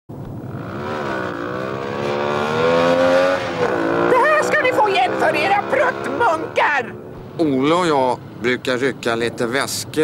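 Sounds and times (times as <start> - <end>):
engine accelerating: 0.2 - 7.0.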